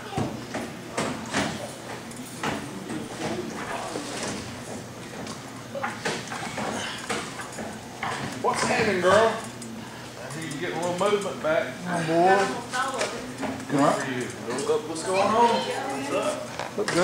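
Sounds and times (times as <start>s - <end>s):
low voices: 1.6s - 7.2s.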